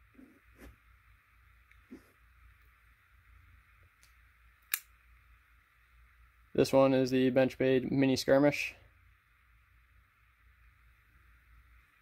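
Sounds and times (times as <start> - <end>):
sharp click: 4.0 - 4.9.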